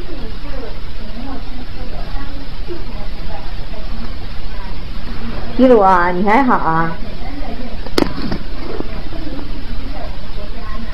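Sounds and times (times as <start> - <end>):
low background hum: 0.0 - 10.9.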